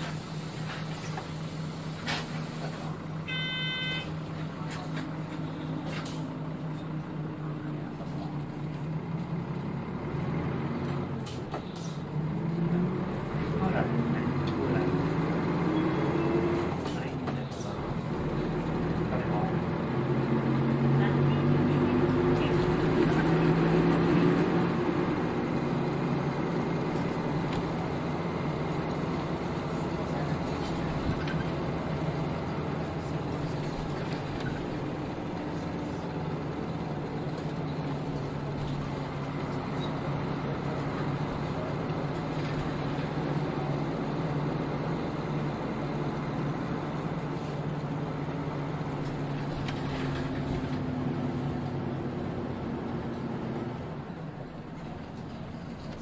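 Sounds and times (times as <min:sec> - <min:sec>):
clunk inside bus: 0:00.0 - 0:03.0, 0:04.2 - 0:07.0, 0:10.7 - 0:12.2, 0:14.4 - 0:20.1, 0:22.1 - 0:44.2, 0:48.8 - 0:53.8, 0:54.7 - 0:56.0
bus diesel engine accelerating: 0:00.0 - 0:56.0.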